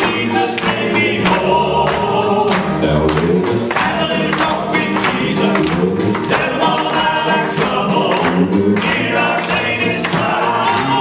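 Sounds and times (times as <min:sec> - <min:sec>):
accompaniment with steady beat: 0:00.0 - 0:11.0
male vocal trio singing: 0:00.0 - 0:11.0.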